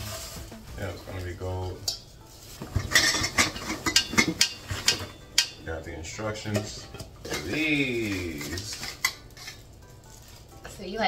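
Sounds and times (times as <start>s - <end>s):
metal tubes clinking: 0.0s - 10.8s.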